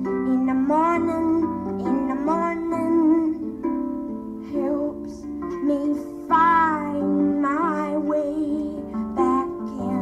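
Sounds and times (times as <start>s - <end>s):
woman singing: 0.0s - 3.7s, 4.4s - 10.0s
plucked harp notes: 0.0s - 10.0s.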